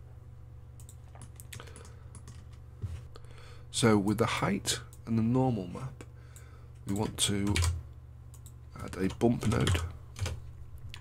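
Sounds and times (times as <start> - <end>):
low steady hum: 0.0 - 11.0
keyboard and mouse clicks: 0.8 - 2.6.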